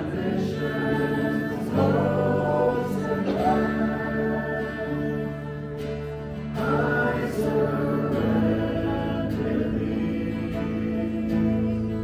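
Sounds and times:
acoustic guitar: 0:00.0 - 0:12.0
electric bass: 0:00.0 - 0:12.0
people singing: 0:00.0 - 0:12.0.

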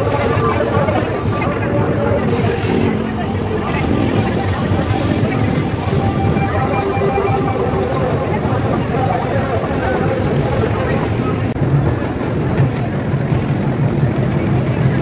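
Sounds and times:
crowd voices: 0:00.0 - 0:15.0
vehicle engines: 0:00.0 - 0:15.0
music: 0:00.3 - 0:10.2.

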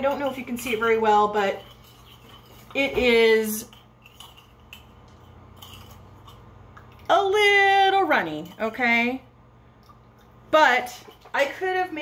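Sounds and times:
spoon and brush scraping glass jar: 0:00.0 - 0:07.1.

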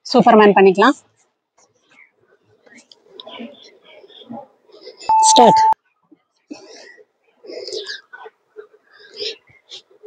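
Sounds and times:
faint whispered voice: 0:01.1 - 0:10.0.

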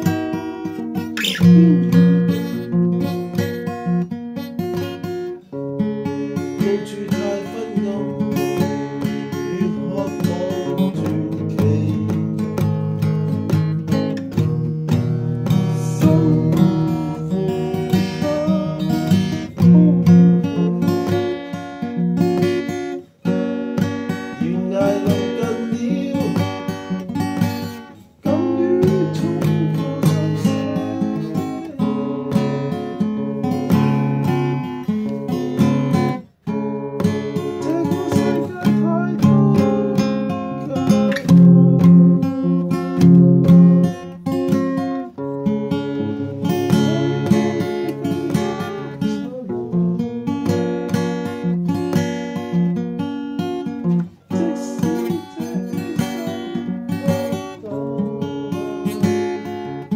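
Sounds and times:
acoustic guitar music: 0:00.0 - 0:59.9.

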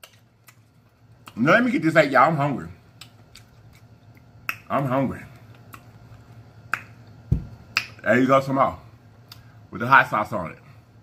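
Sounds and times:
bottle thump on table: 0:07.3 - 0:07.6.

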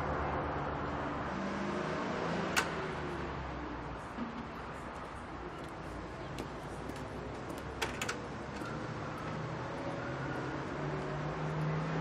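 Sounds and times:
traffic hum: 0:00.0 - 0:12.0.

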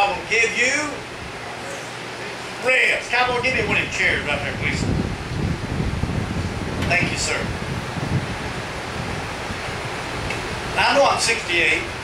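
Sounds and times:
wind buffeting microphone: 0:03.1 - 0:12.0.

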